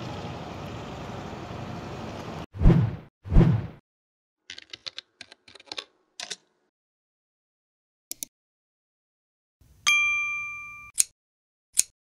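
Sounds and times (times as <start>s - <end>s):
bell-like ding: 9.9s - 11.0s.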